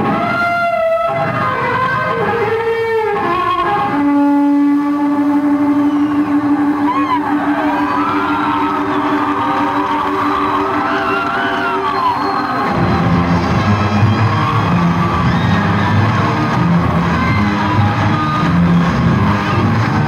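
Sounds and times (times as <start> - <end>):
electric blues guitar: 0.0 - 6.0
bass and drums: 0.0 - 20.0.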